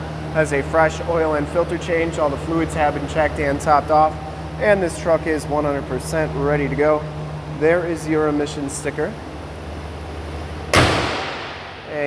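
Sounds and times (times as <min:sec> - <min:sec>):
engine idling hum: 0:00.0 - 0:12.0
truck hood slamming shut: 0:10.7 - 0:11.8.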